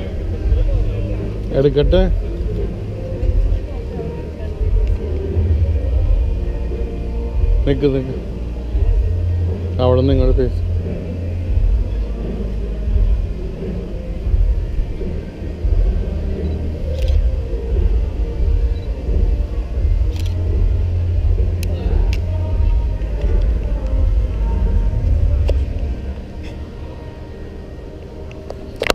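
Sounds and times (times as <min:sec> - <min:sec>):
people chatting: 0:00.0 - 0:08.4, 0:09.1 - 0:11.0
low fluctuating rumble: 0:00.0 - 0:28.0.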